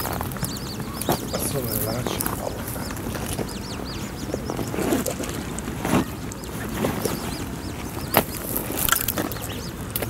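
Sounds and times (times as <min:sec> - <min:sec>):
chicks peeping: 0:00.0 - 0:10.0
wind: 0:00.0 - 0:10.0.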